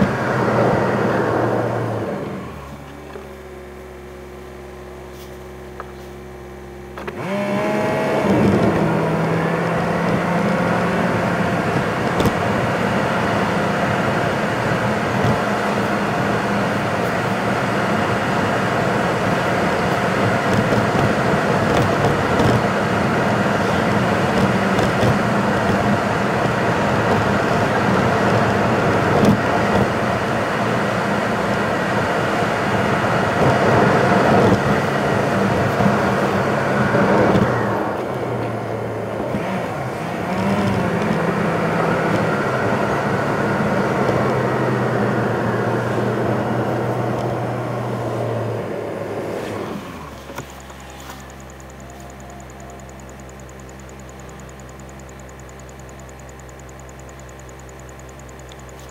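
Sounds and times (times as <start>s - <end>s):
tyre and road noise: 0.0s - 3.6s, 6.9s - 58.9s
car engine drone: 0.0s - 58.9s.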